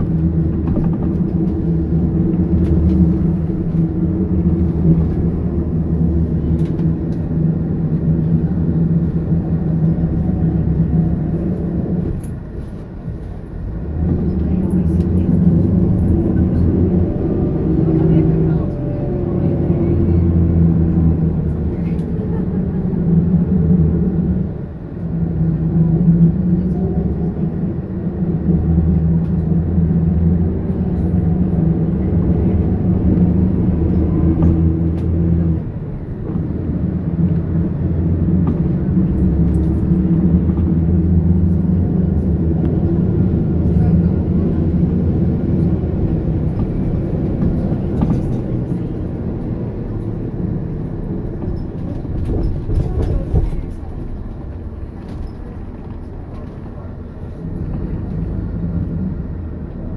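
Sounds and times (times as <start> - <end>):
road noise: 0.0 - 59.9
vehicle engine under load: 0.0 - 59.9.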